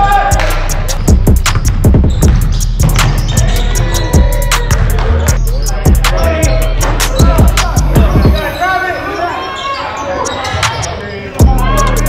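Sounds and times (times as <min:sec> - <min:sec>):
players' voices: 0:00.0 - 0:12.0.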